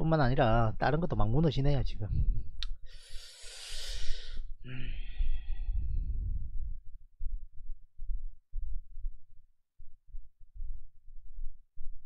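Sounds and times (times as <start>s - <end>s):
breathy hum: 2.9s - 6.5s
man sighing heavily: 3.5s - 5.7s
low irregular thuds: 5.2s - 12.0s.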